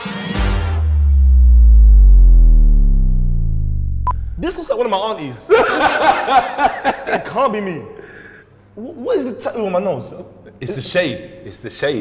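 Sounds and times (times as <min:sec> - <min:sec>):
low synthesized falling tone: 0:00.9 - 0:04.5.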